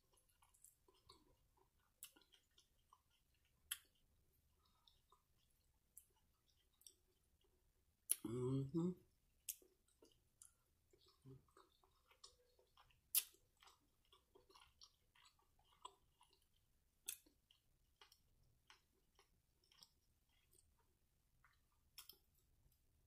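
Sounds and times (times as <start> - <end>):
faint chewing: 0.0 - 8.3, 9.4 - 22.8
wet mouth sounds: 9.5 - 13.4.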